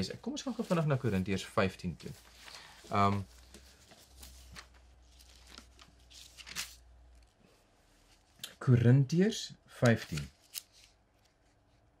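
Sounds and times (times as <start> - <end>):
thin pages rustling: 0.0 - 8.4, 9.9 - 11.6.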